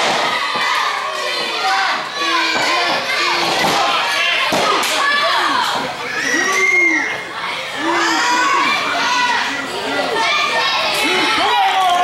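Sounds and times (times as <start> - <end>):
children yelling and chattering: 0.0 - 12.0.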